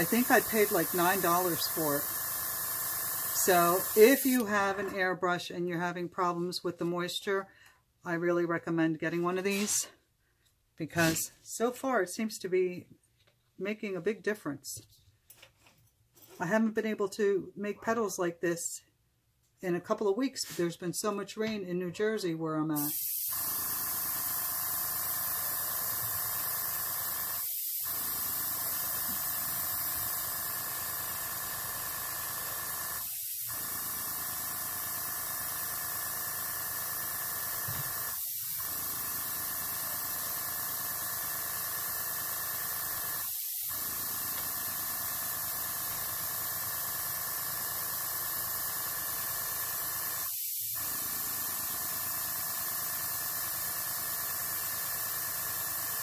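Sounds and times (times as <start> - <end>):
airbrush air hiss: 0.0 - 4.6, 22.8 - 30.9, 42.6 - 46.4, 50.2 - 51.4.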